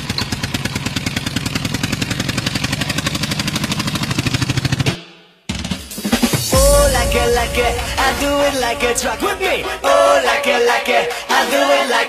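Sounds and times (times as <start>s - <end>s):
tractor engine putt-putt: 0.0s - 4.8s.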